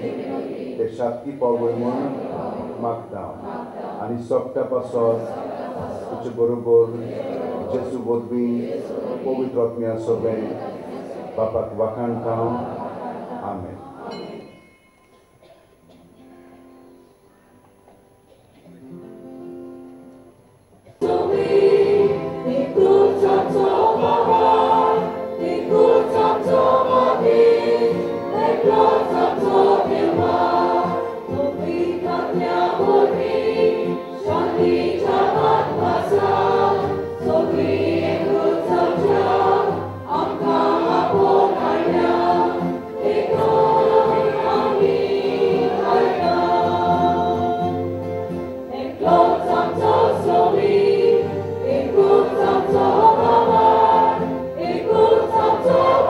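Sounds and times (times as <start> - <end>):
choir singing a hymn: 0.0 - 14.7, 20.8 - 56.0
guitar accompaniment: 9.0 - 56.0.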